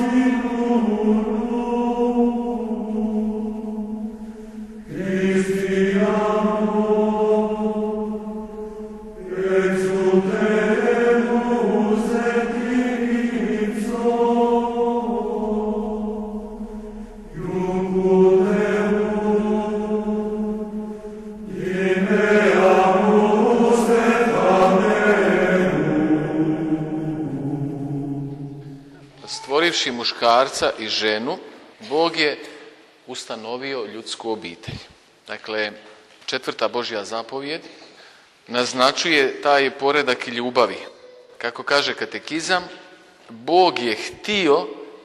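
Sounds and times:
sacred vocal chant: 0:00.0 - 0:34.9.

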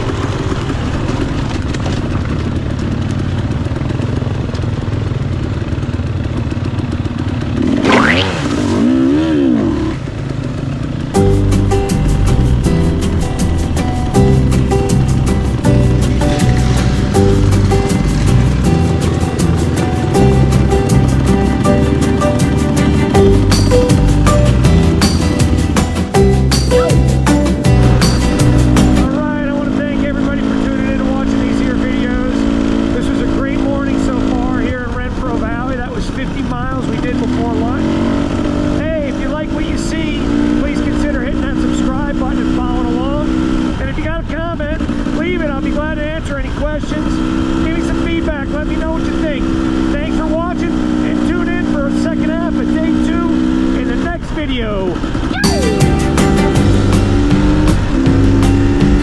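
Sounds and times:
dirt bike engine running: 0:00.0 - 0:59.0
music: 0:11.1 - 0:29.8, 0:55.2 - 0:59.0.

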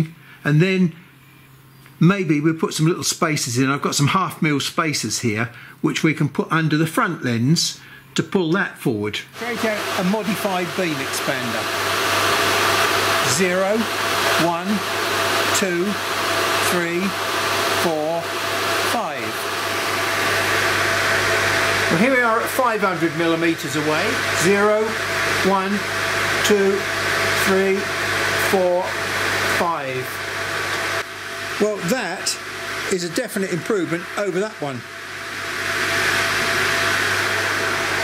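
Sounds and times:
electric blower running: 0:09.2 - 0:38.0
machine fan hiss: 0:09.2 - 0:38.0.

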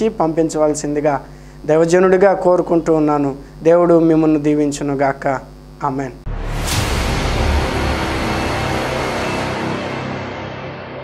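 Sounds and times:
logo sting music: 0:06.3 - 0:11.0.

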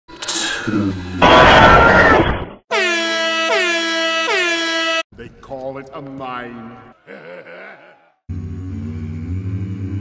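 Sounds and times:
air horn blasts: 0:02.7 - 0:05.1.

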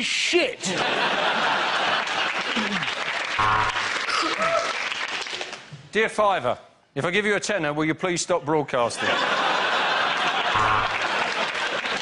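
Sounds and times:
studio audience applauding: 0:01.5 - 0:05.6, 0:10.1 - 0:12.0.

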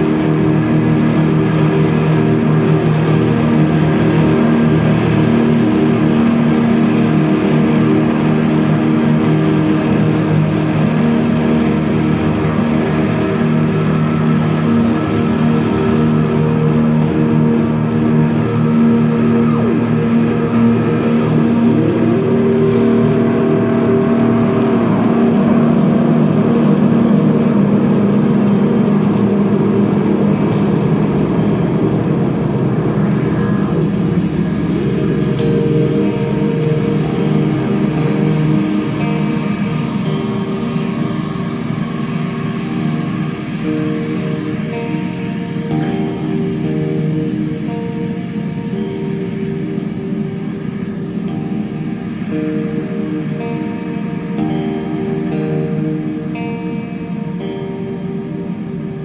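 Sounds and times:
drone music with guitar loops: 0:00.0 - 0:59.0.

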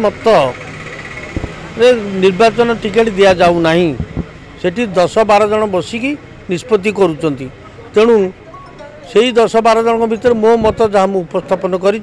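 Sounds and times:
steady background noise: 0:00.0 - 0:12.0
man speaking: 0:01.8 - 0:04.0, 0:04.6 - 0:08.4, 0:09.0 - 0:12.0.

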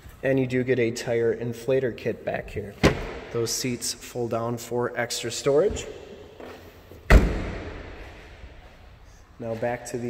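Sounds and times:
car trunk lid slamming: 0:02.8 - 0:03.3, 0:07.1 - 0:07.9.

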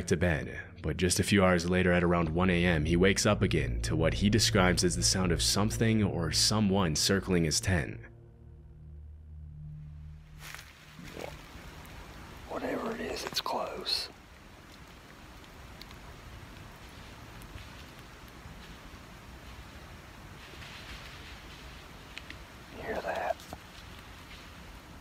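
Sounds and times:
steady hiss: 0:10.4 - 0:25.0.

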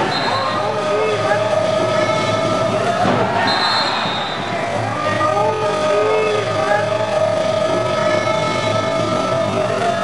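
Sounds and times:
spectators shouting and cheering: 0:00.0 - 0:10.0.

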